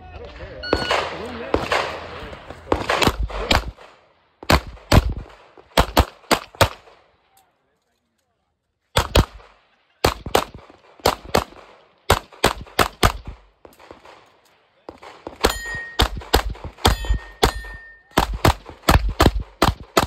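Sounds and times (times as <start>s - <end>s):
pistol shots: 0.7s - 7.0s, 9.0s - 14.3s, 14.9s - 20.0s
steel target ringing: 15.4s - 16.0s, 16.9s - 18.2s.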